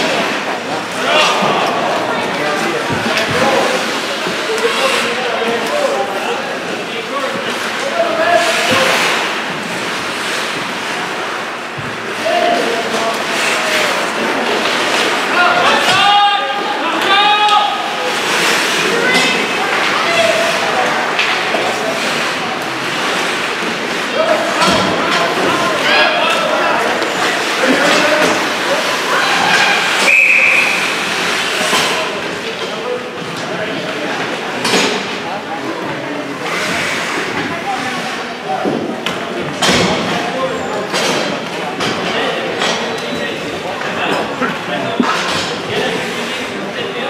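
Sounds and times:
spectators chattering: 0:00.0 - 0:47.0
referee's whistle: 0:30.0 - 0:31.0.

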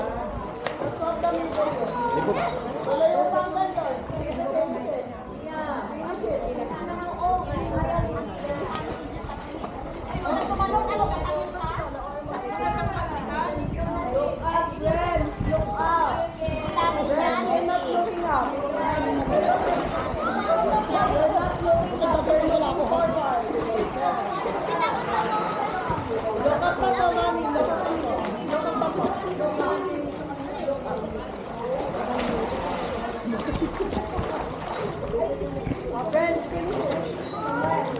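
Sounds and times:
people and children talking: 0:00.0 - 0:37.9
people chattering and calling: 0:00.0 - 0:37.9.

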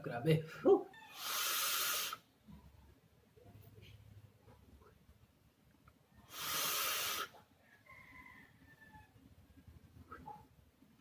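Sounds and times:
airy hiss of exhaled vapour: 0:01.1 - 0:02.3, 0:06.2 - 0:07.4.

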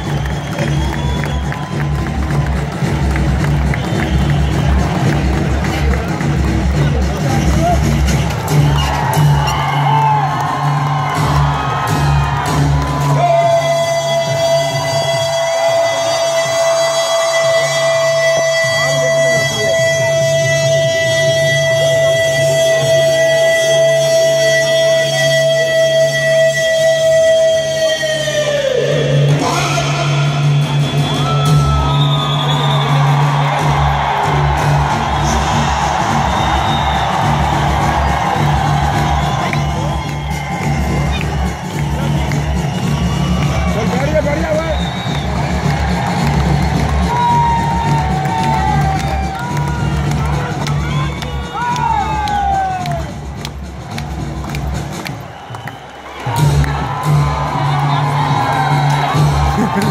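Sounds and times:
crowd cheering: 0:00.0 - 0:59.9
loud music: 0:00.0 - 0:59.9.

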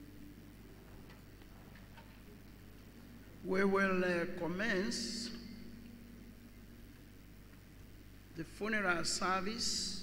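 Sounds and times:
low hum: 0:00.0 - 0:08.8.

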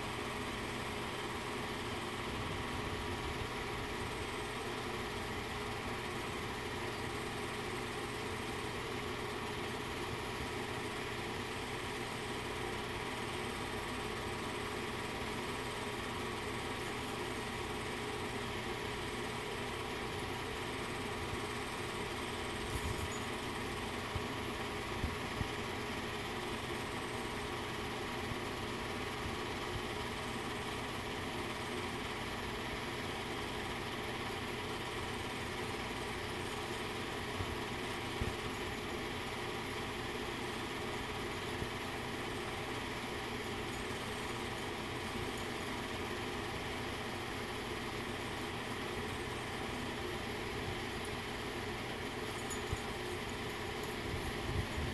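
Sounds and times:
film projector whirring hum: 0:00.0 - 0:54.9.

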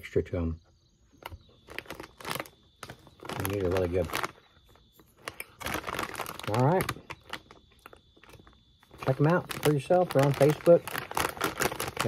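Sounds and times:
snack crunching crackles: 0:01.2 - 0:12.0.

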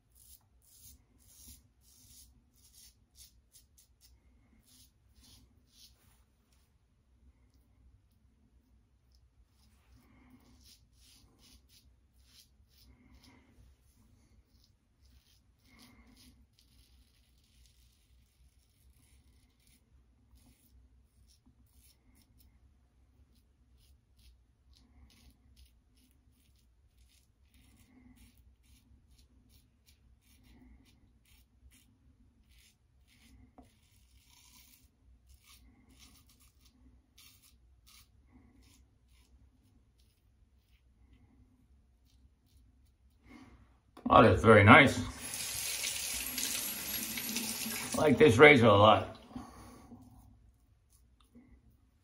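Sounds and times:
razor scraping stubble: 0:00.0 - 0:06.2, 0:09.5 - 0:22.5, 0:23.3 - 0:41.0, 0:45.2 - 0:49.0.

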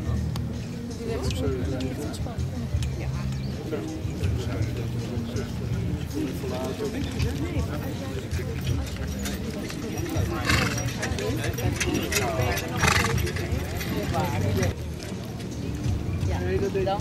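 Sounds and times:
harness jingling: 0:07.1 - 0:15.6
horses trotting on grass: 0:08.4 - 0:17.0.

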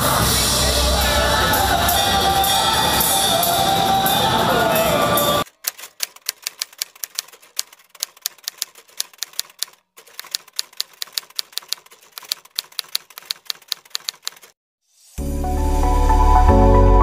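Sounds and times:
typewriter key clicks: 0:05.5 - 0:14.6.

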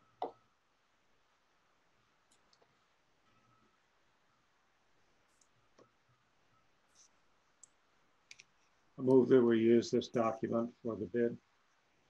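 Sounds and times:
faint clicks: 0:02.2 - 0:03.6, 0:05.3 - 0:06.0, 0:06.9 - 0:09.3.

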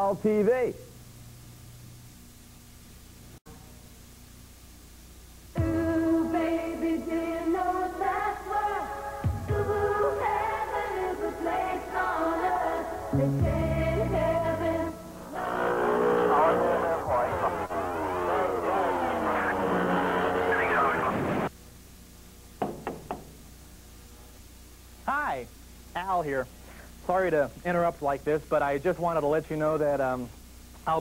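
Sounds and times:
sliding synthetic voice-like tones: 0:15.4 - 0:21.5
hand knocking on cabinet: 0:22.6 - 0:23.3.

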